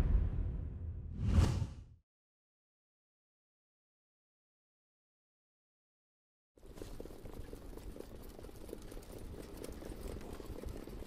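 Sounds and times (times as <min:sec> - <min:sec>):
whoosh sound effects: 0:00.0 - 0:01.9.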